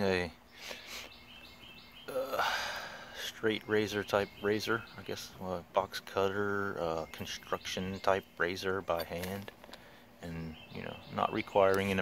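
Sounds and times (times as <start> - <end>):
faint bird chirps: 0.0 - 12.0
man sighing: 2.1 - 3.2.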